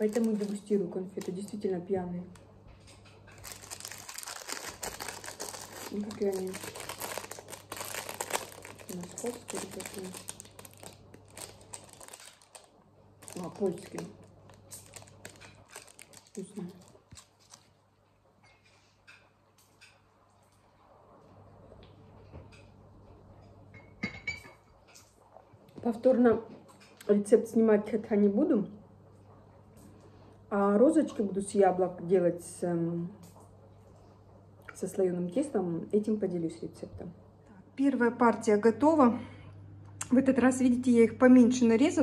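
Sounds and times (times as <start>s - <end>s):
foil wrapper crinkling: 0.0s - 1.6s, 3.3s - 17.8s
cup clinking on saucer: 23.8s - 24.6s.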